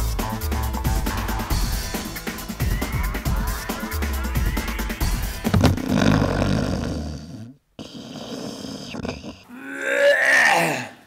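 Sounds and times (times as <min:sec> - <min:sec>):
person's non-speech vocal sounds: 0:05.5 - 0:11.0.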